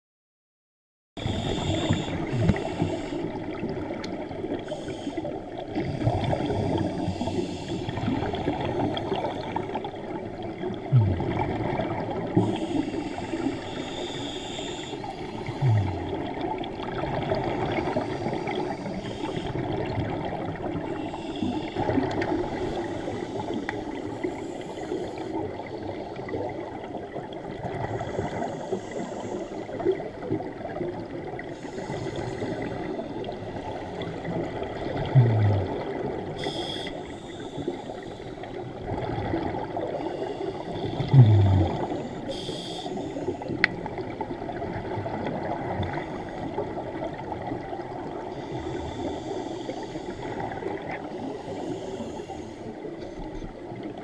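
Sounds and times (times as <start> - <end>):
regulator breathing hiss: 1.2 - 3.3, 4.7 - 5.3, 7.0 - 7.9, 12.4 - 15.3, 18.1 - 19.6, 36.4 - 38.4, 42.2 - 43.5, 48.6 - 50.4, 51.3 - 53.2
scuba bubbles underwater: 1.2 - 54.0.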